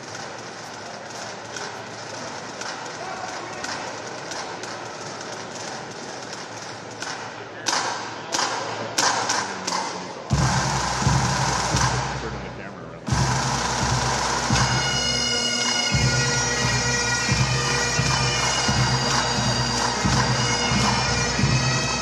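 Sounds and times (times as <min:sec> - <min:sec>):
crowd chatter in a hall: 0:00.0 - 0:22.0
sharp drum beats: 0:05.7 - 0:22.0
bagpipe drones: 0:09.7 - 0:22.0.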